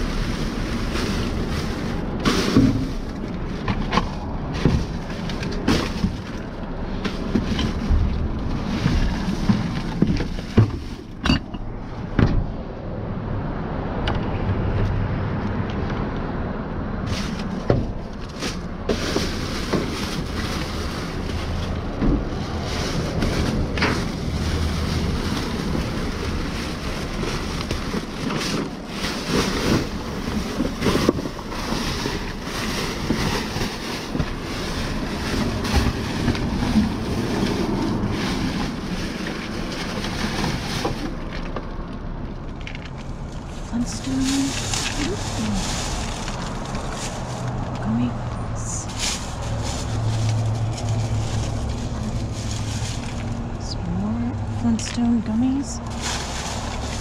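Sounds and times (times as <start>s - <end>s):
plastic bags rustling: 0.0s - 12.1s, 17.0s - 57.0s
items knocking: 0.0s - 12.5s
wind rumble on microphone: 0.0s - 42.6s.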